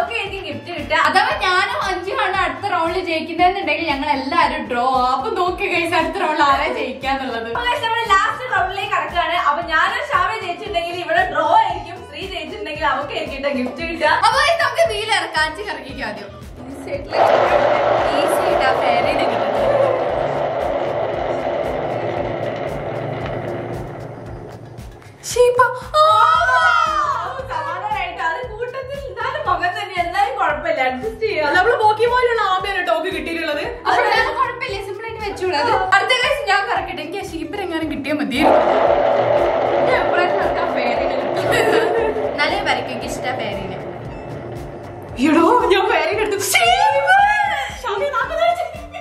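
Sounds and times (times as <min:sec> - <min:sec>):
light jazz music: 0:00.0 - 0:18.0, 0:24.2 - 0:39.1
prize wheel rolling rumble: 0:17.0 - 0:25.2, 0:38.4 - 0:47.1
spinning prize wheel whirring: 0:17.1 - 0:25.2.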